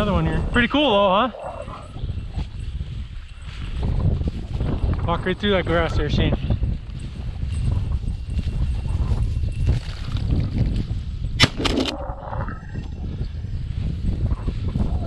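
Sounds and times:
wind rumbling on microphone: 0:00.0 - 0:15.0
footsteps crunching dry grass: 0:00.7 - 0:11.2.

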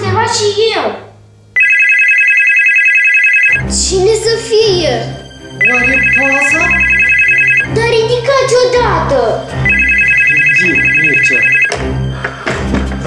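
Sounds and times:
telephone ringing: 0:01.6 - 0:03.6, 0:05.6 - 0:07.8, 0:09.6 - 0:11.9.

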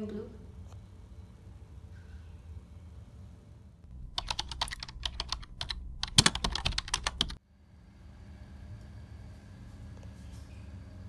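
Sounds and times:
sharp clicks: 0:03.9 - 0:07.4.

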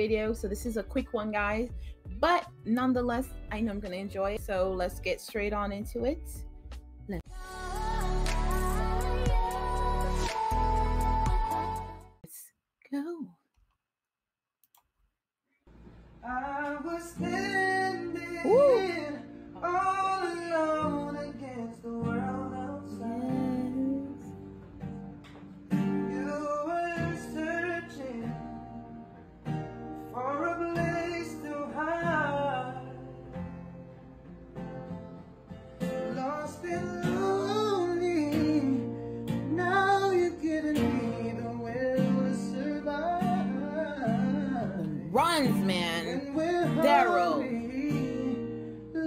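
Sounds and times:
man singing: 0:16.2 - 0:24.3, 0:26.1 - 0:28.6, 0:36.1 - 0:38.9, 0:39.5 - 0:49.0
strummed acoustic guitar: 0:16.2 - 0:49.0.

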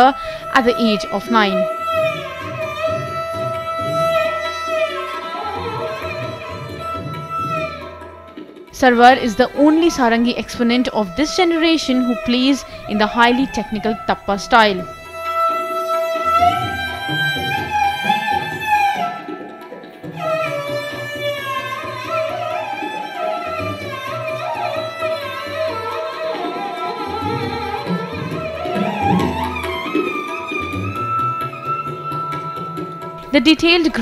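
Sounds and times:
sarangi bowed held note: 0:00.0 - 0:34.0.

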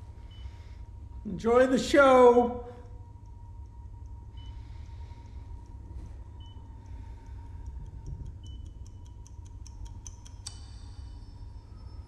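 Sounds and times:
low steady drone: 0:00.0 - 0:12.0
ticking: 0:06.5 - 0:11.9.

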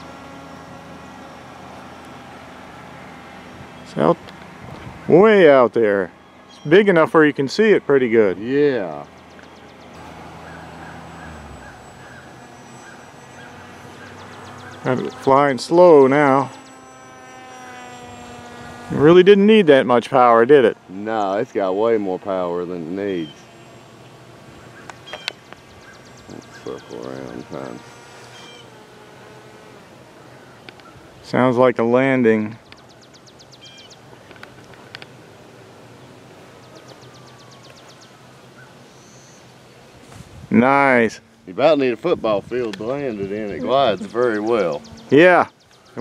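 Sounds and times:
electric motor and propeller whine: 0:00.0 - 0:46.0
faint steady low hum: 0:00.0 - 0:46.0
bird trilling: 0:05.0 - 0:31.1, 0:32.6 - 0:34.4, 0:42.8 - 0:46.0.

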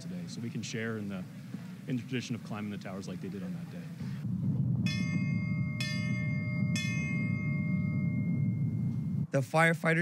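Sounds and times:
low background rumble: 0:00.0 - 0:09.4
bell tolling: 0:04.9 - 0:09.2.

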